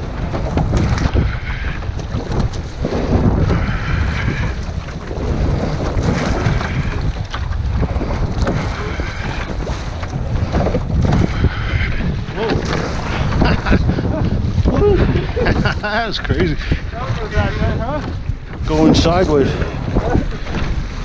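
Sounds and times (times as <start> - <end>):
oar stroke swish: 0.0 - 15.8
water splashing against hull: 0.0 - 21.0
wave slapping boat side: 0.0 - 21.0
wind buffeting microphone: 0.0 - 21.0.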